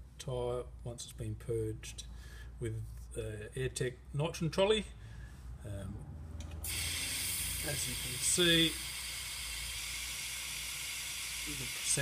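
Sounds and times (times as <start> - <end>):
gas hissing from tyre valve: 6.6 - 12.0.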